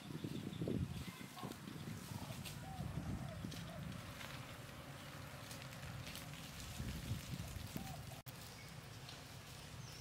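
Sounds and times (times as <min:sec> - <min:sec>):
faint crackles: 0:01.0 - 0:10.0.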